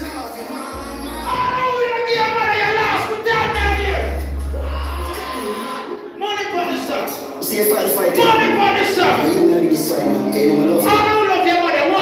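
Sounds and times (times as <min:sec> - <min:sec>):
deep bass note: 0:03.4 - 0:05.2.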